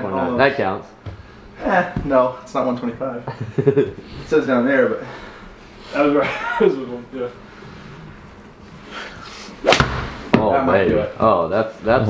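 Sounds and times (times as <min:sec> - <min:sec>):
golf club swing whoosh: 0:09.6 - 0:10.2
clubhead striking ball: 0:09.6 - 0:10.4.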